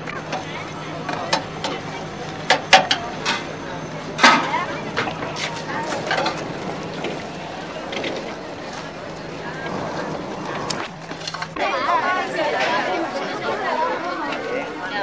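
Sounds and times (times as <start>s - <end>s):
low hum: 0.0s - 11.6s
people talking: 0.0s - 15.0s.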